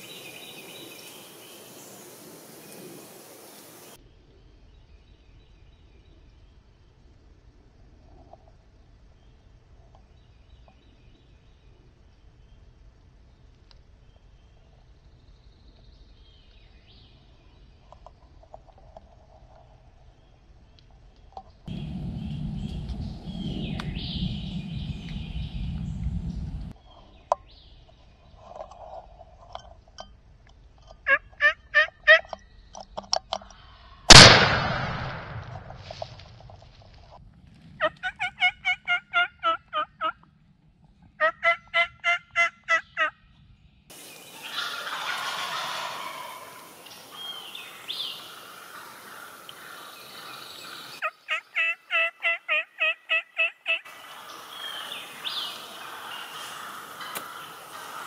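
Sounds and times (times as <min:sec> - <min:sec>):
turkeys gobbling: 0:31.1 - 0:32.3, 0:37.8 - 0:40.2, 0:41.2 - 0:43.1, 0:44.3 - 0:58.0
shotgun blast: 0:34.1 - 0:35.9.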